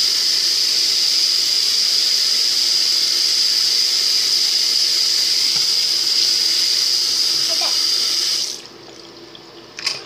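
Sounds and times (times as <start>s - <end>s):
bathroom tap running: 0.0s - 10.0s.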